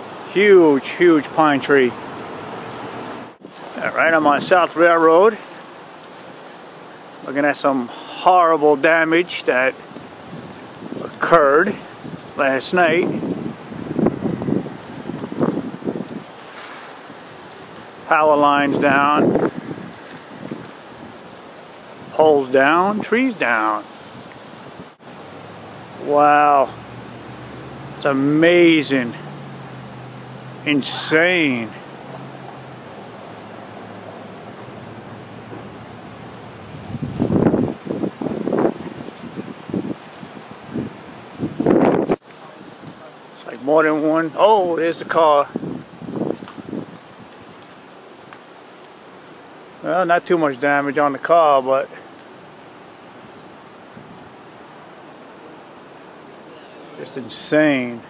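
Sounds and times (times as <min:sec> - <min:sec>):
wind hiss: 0:00.0 - 0:58.0.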